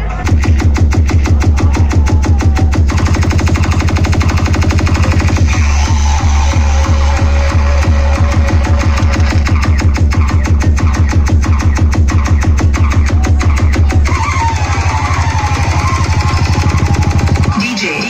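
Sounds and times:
electronic dance music: 0.0 - 18.0
heavy bass beat: 0.0 - 18.0.

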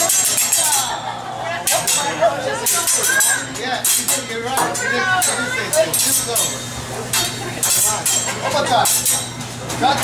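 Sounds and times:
metal spatula clinking on griddle: 0.0 - 4.3, 5.2 - 9.4.

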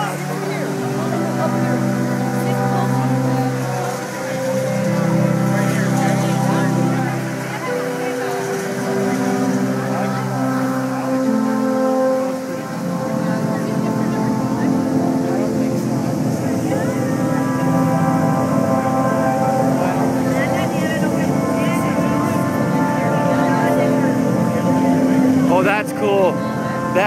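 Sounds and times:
murmur of crowd talking: 0.0 - 27.0
show music with long held notes: 0.0 - 27.0.

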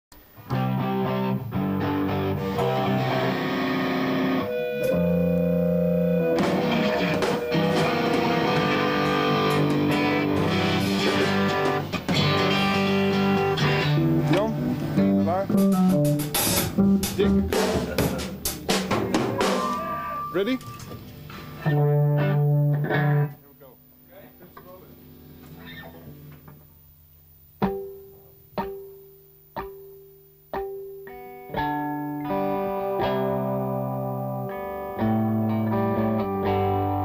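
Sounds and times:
electric guitar: 0.2 - 23.4, 25.4 - 26.7, 27.6 - 37.0
keyboard chords: 0.4 - 23.4, 27.6 - 37.0
drum hits: 6.3 - 12.4, 15.5 - 21.0.

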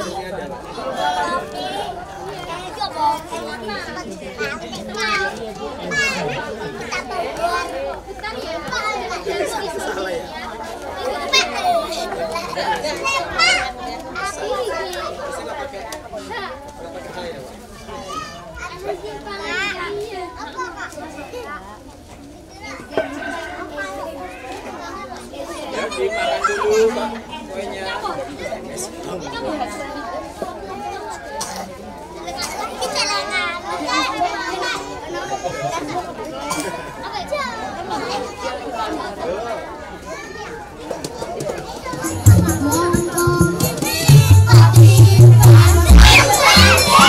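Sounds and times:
children shouting and squealing: 0.0 - 47.0
young children chattering: 0.0 - 47.0.

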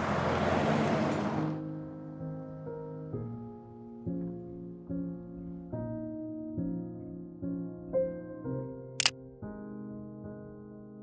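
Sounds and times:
slow piano music: 1.4 - 11.0.

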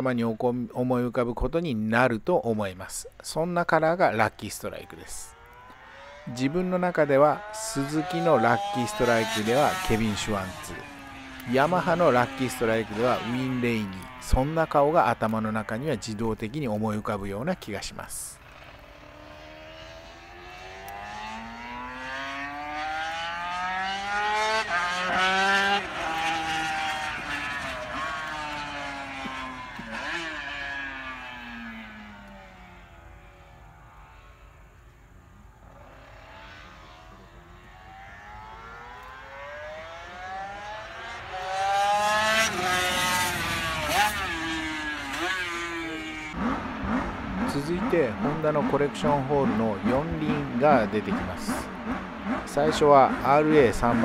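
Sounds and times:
racing motorcycle passing: 3.5 - 54.0.

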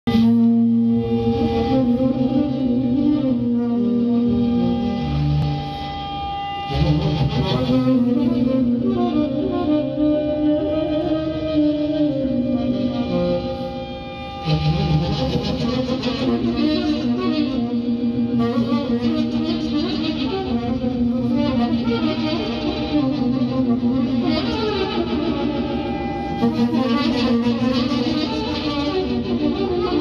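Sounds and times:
layered saxophone drone: 0.1 - 30.0.

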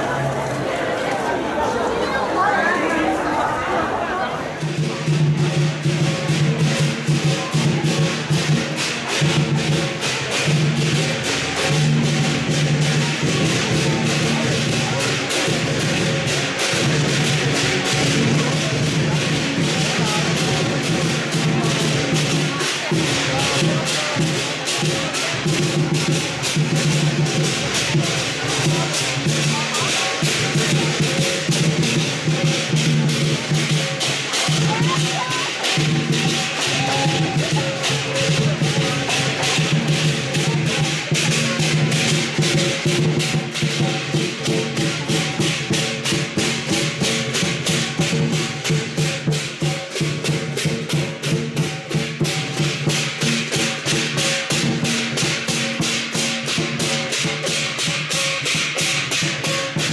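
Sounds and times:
crowd voices: 0.0 - 59.9
drum beating: 0.0 - 59.9
cymbals clashing: 4.6 - 59.9.

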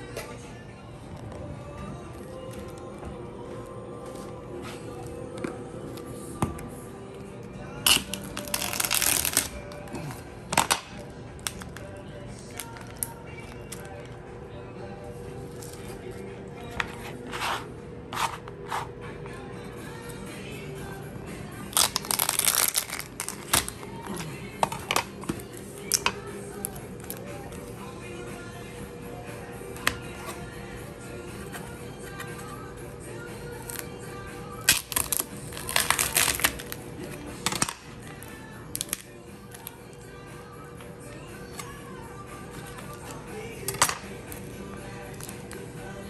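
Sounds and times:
background music: 0.0 - 46.0
shell crackling crunches: 7.9 - 9.6, 21.8 - 23.8.

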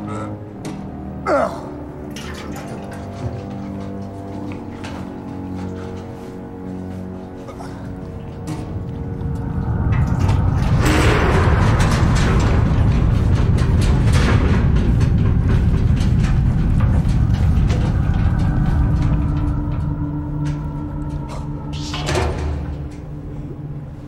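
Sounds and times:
faint steady music tones: 0.0 - 24.0
deep loud rumble: 8.0 - 24.0.

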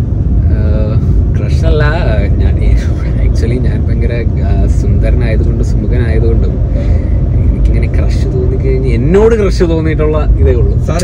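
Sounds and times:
car road rumble: 0.0 - 11.0
man talking: 0.4 - 11.0.

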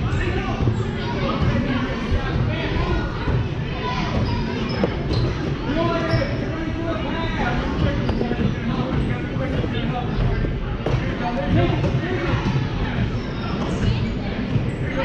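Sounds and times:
voices of players and spectators: 0.0 - 15.0.

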